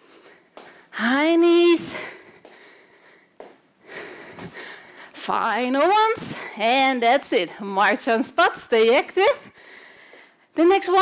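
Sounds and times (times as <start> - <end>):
woman breathing heavily: 0.0 - 6.7, 9.4 - 10.6.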